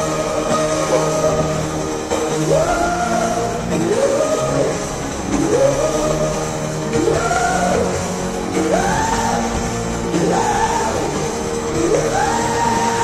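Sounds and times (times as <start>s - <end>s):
electro-industrial rock music: 0.0s - 13.0s.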